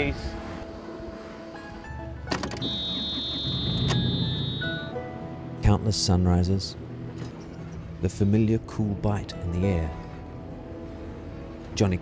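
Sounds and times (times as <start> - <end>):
background music: 0.0 - 12.0
diesel engine starting and rumbling: 2.2 - 4.9
high-pitched warning beep: 2.6 - 4.9.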